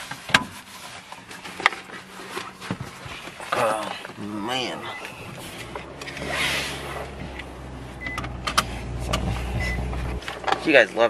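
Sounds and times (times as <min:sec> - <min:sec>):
car cabin rumble: 0:02.0 - 0:10.8
sharp clicks and knocks: 0:07.3 - 0:10.7.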